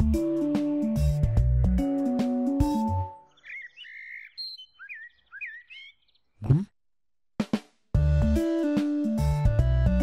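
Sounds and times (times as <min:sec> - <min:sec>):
small bird chirping: 0:03.2 - 0:06.6.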